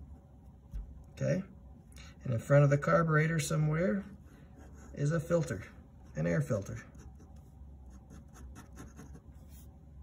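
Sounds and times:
pen scratching on paper: 4.4s - 5.3s, 6.0s - 9.7s.

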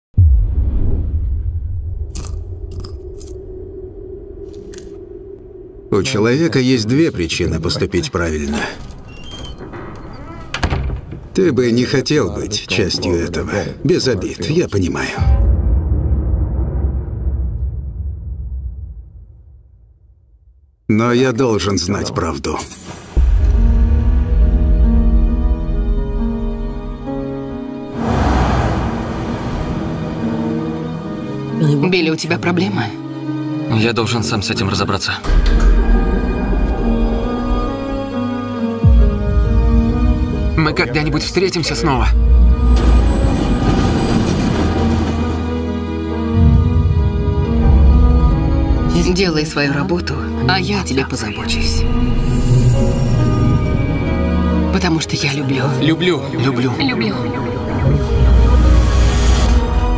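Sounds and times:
deep cinematic boom: 0.2s - 5.9s, 15.2s - 20.6s, 27.8s - 31.2s
low drone: 0.2s - 7.0s, 27.8s - 31.6s
low music: 23.4s - 42.8s
car passing by: 27.9s - 30.8s.

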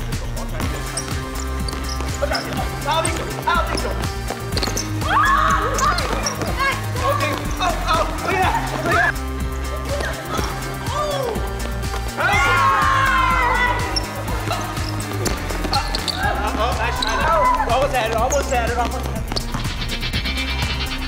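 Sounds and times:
background music with bass line: 0.0s - 21.0s
basketball bouncing on gym floor: 0.6s - 9.1s, 14.0s - 19.7s
players calling out: 0.6s - 19.5s.

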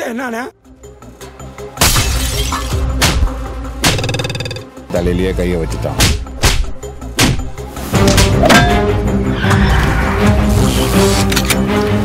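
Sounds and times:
trailer music: 0.5s - 12.0s.

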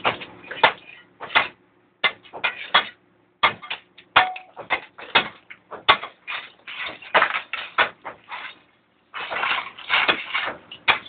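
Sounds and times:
knocks and scrapes on metal: 0.0s - 11.0s.

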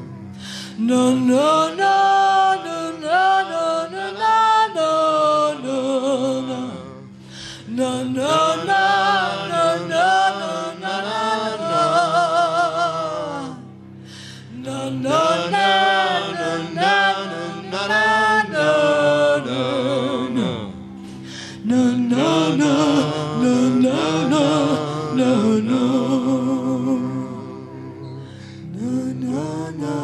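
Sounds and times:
wordless singing with vibrato: 0.0s - 30.0s.

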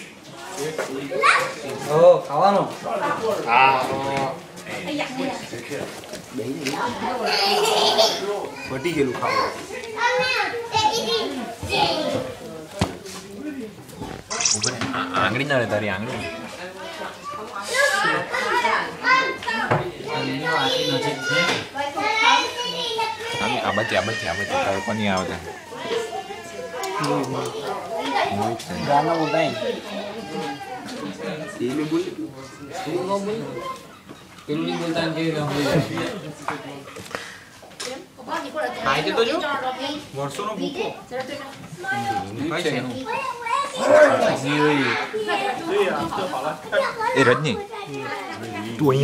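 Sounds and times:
children talking and exclaiming: 0.0s - 49.0s.

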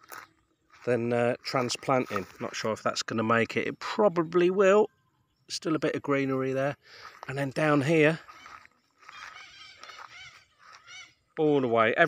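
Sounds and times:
faint bird calls: 3.6s - 11.8s.

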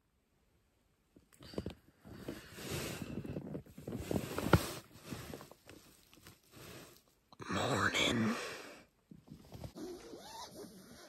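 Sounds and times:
sleeping bag fabric rustling: 2.2s - 7.0s.

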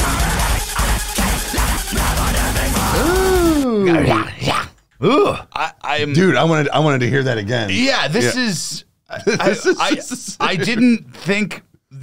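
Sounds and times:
electronic metal music: 0.0s - 3.7s
man exclaiming and laughing: 1.9s - 6.0s, 7.8s - 11.3s.

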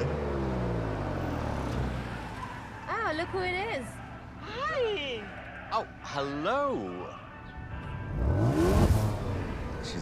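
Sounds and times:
car engine accelerating hard: 8.1s - 10.0s.

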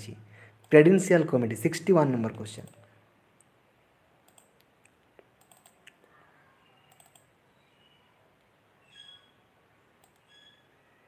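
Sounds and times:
faint clicks: 4.2s - 6.2s, 6.9s - 7.3s, 10.0s - 10.3s.

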